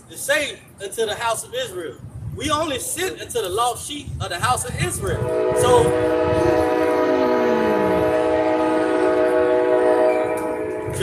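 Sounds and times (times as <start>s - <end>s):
locomotive air horn: 5.1s - 11.0s.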